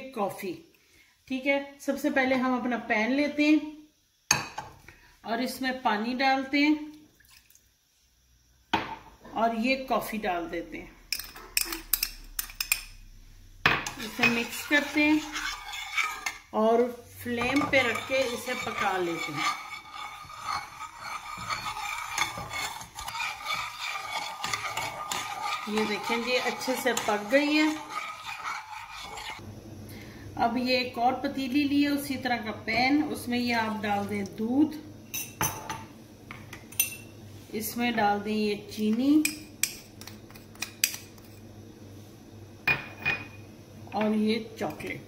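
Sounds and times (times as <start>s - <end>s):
metal spoon stirring in saucepan: 13.8s - 29.4s, 39.2s - 41.4s.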